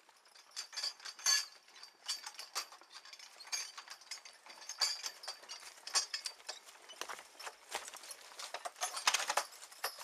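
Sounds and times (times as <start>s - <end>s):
harness chains clinking: 0.0s - 10.0s
horses walking: 0.0s - 10.0s
hooves knocking: 2.7s - 10.0s.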